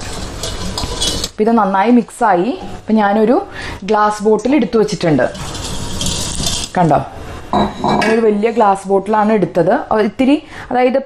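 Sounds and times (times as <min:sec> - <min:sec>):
spatula scraping a metal bowl: 0:00.0 - 0:01.4, 0:04.8 - 0:08.8.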